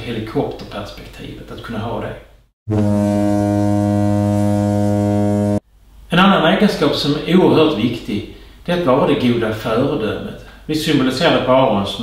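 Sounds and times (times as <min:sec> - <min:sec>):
low buzzy horn tone: 0:02.7 - 0:05.6.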